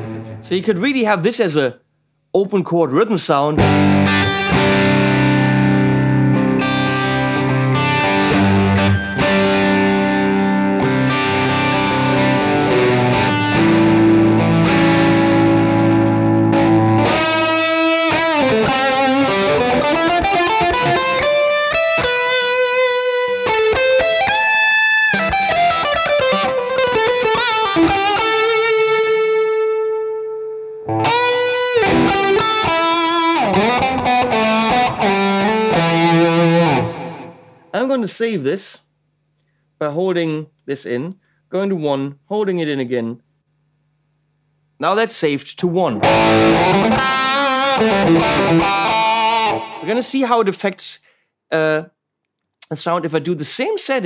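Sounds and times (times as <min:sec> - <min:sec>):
distorted electric guitar: 0:00.0 - 0:00.6, 0:03.6 - 0:37.8, 0:46.0 - 0:50.2.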